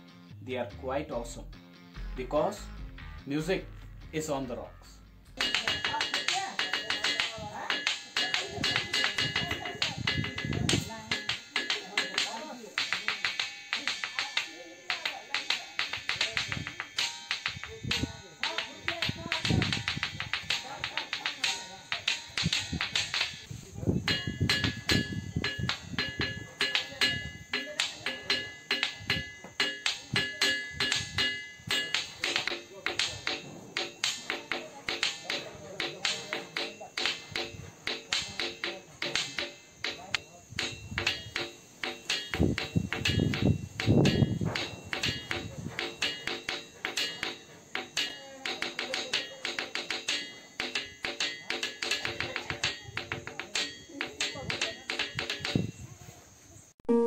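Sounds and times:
ringing rock struck: 4.7s - 55.8s.

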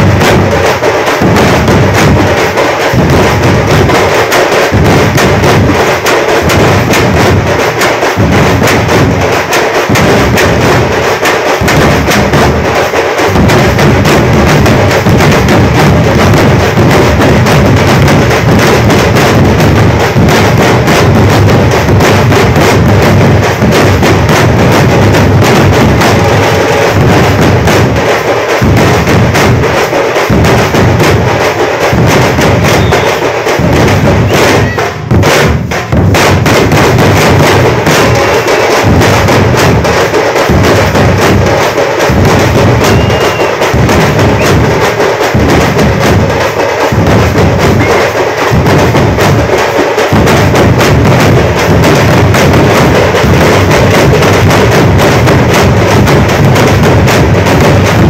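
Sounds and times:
large drums beaten with sticks: 0.0s - 58.0s.

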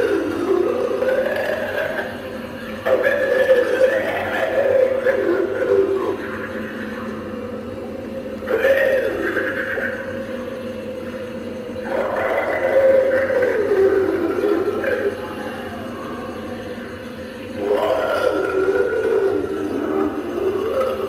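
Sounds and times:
recorded zombie growls and moans: 0.0s - 6.8s, 11.8s - 15.9s, 17.5s - 21.0s
steady hum: 0.0s - 21.0s.

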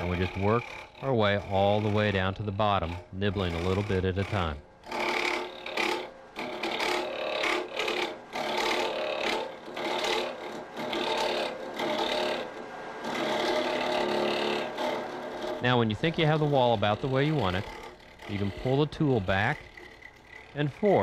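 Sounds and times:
lathe tool rasping scrape: 0.0s - 21.0s.

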